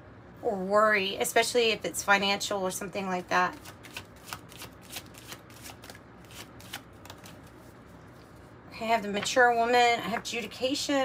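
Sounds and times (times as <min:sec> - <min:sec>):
cards being shuffled by hand: 0:03.5 - 0:08.5.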